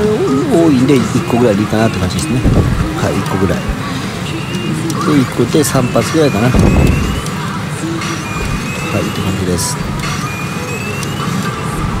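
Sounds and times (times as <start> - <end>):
pachinko machines music and effects: 5.1 - 12.0
rising electronic tone: 6.3 - 7.3.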